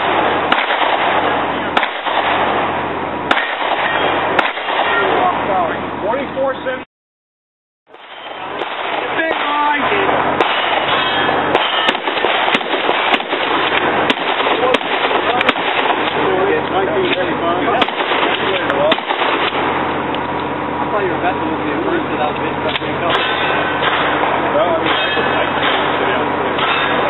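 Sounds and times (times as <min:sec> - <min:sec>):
shotgun shots: 0:00.0 - 0:05.7, 0:08.0 - 0:16.6, 0:17.7 - 0:20.0, 0:22.7 - 0:27.0
background chatter: 0:08.3 - 0:27.0.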